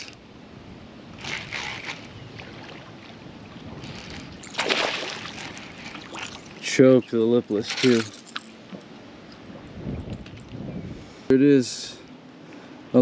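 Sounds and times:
water lapping: 0:01.2 - 0:06.8
fish splashing at water surface: 0:03.8 - 0:06.6.

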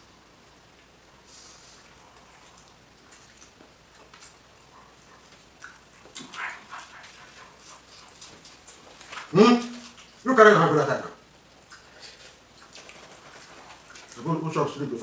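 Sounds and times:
people chewing: 0:01.3 - 0:10.3, 0:11.5 - 0:15.0.

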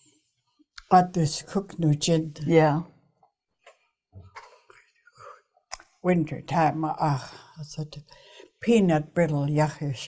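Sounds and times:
woman speaking: 0:00.8 - 0:02.9, 0:06.0 - 0:10.0.

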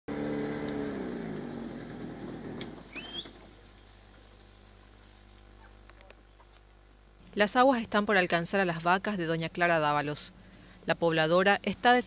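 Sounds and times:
outboard motor throttling down: 0:00.1 - 0:03.4
rising chirp: 0:02.9 - 0:03.4.

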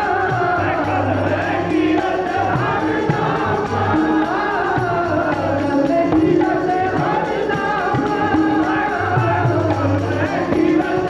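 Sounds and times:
harmonium chords: 0:00.0 - 0:11.0
tabla drum strokes: 0:00.0 - 0:11.0
voices singing a hymn: 0:00.0 - 0:11.0.

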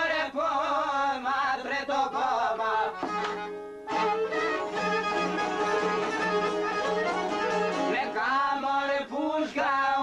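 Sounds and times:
man singing ornamented folk song: 0:00.0 - 0:10.0.

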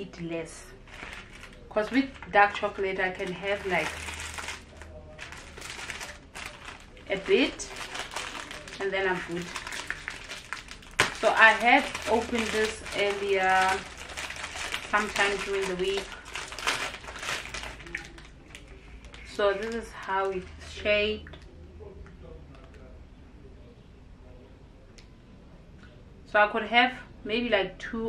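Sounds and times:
foil wrapper crinkling: 0:00.8 - 0:20.4.

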